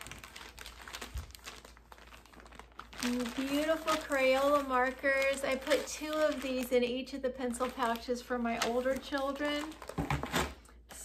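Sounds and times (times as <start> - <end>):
plastic bag crinkling: 0.0 - 10.6.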